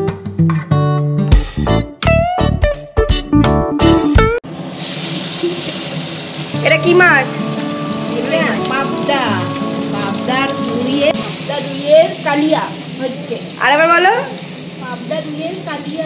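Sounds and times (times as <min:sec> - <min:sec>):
guitar music: 0:00.0 - 0:04.4, 0:06.5 - 0:12.6
oil sizzling in a wok: 0:04.5 - 0:16.0
voices talking: 0:06.6 - 0:16.0.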